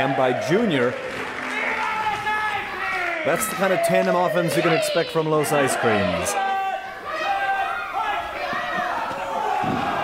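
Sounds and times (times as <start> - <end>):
crowd shouting in a hall: 0.0 - 10.0.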